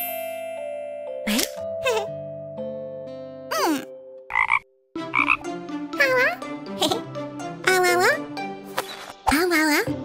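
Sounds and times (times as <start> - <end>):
cartoon frog croaking: 3.5 - 7.0.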